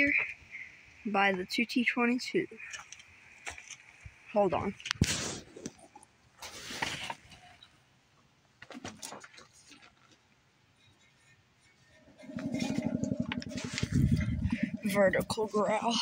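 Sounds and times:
low rough pulsing growl: 12.0 - 16.0
steady hum: 12.0 - 16.0.

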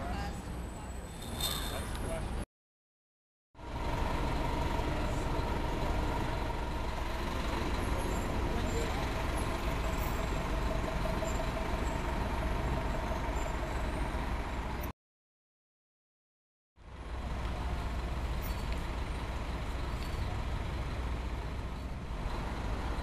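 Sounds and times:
city street traffic rumble: 0.0 - 2.4, 3.6 - 14.9, 16.8 - 23.0.

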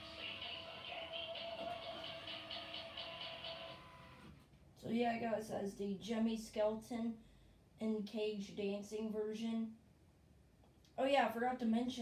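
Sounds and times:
song from small speaker: 0.0 - 4.4.

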